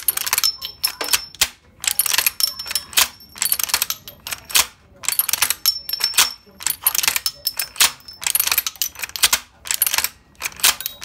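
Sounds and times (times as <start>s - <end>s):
machine gun metal clicks: 0.0s - 11.0s.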